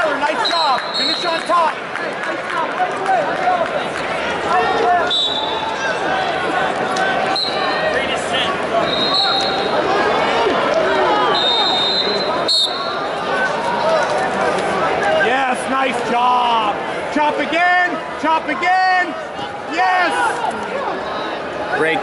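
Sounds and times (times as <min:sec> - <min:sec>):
crowd shouting and talking: 0:00.0 - 0:22.0
high-pitched whistle tones: 0:08.8 - 0:09.7, 0:11.3 - 0:12.9.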